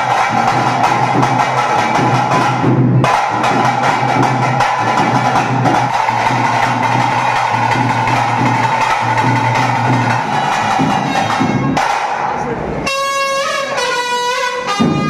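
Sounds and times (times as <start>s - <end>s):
fast steady drumming: 0.0s - 12.9s.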